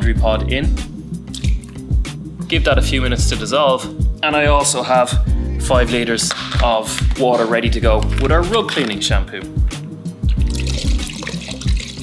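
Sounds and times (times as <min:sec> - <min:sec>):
background music with beat: 0:00.0 - 0:12.0
liquid pouring into water: 0:10.2 - 0:12.0.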